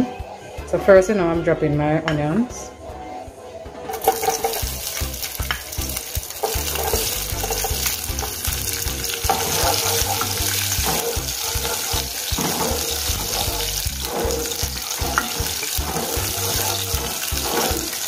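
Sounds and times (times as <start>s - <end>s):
spatula stirring in pot: 3.8s - 18.0s
onions sizzling in oil: 3.9s - 18.0s.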